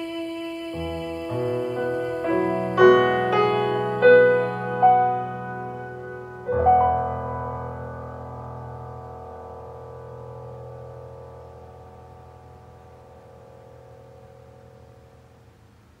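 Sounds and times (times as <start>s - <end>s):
piano chord over loudspeakers: 0.8s - 16.0s.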